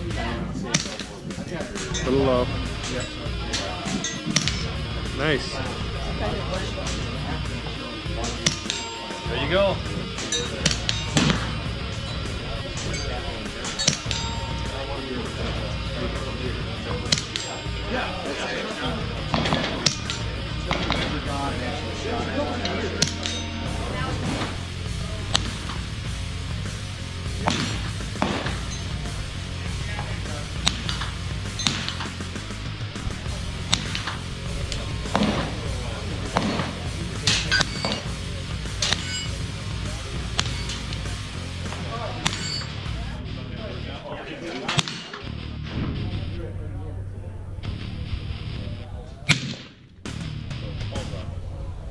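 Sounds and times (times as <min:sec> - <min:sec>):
background music: 0:00.0 - 0:51.9
suppressed gunshots: 0:27.4 - 0:28.7, 0:33.6 - 0:35.7, 0:49.3 - 0:49.9.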